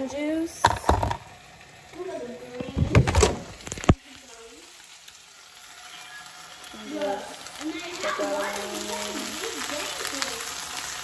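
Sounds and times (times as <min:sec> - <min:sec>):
spinach sizzling in a frying pan: 0:00.0 - 0:11.0.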